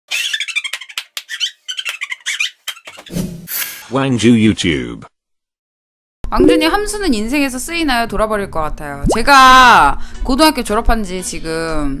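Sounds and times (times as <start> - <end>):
high-pitched squeaky laughter: 0.1 - 3.1.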